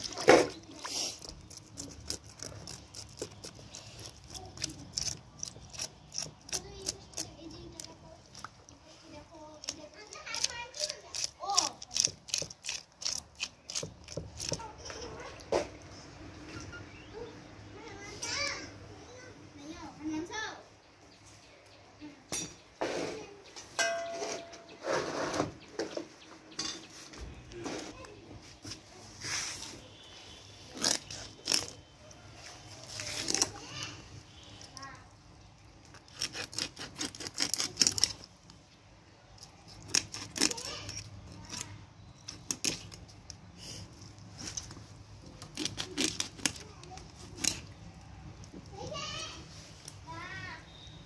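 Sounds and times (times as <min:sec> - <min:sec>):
knife scraping fish scales: 0:00.0 - 0:08.5, 0:09.6 - 0:15.1, 0:30.7 - 0:31.8, 0:32.8 - 0:33.6, 0:35.8 - 0:38.3, 0:45.4 - 0:47.8
light metallic clinks: 0:23.8 - 0:24.7.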